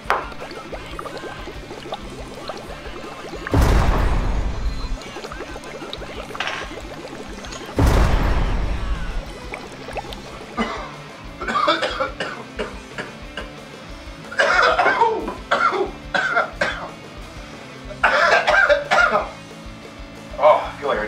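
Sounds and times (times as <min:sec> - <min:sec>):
background music: 0:00.0 - 0:21.0
man coughing harshly: 0:10.6 - 0:13.5, 0:14.4 - 0:16.9, 0:18.0 - 0:19.3.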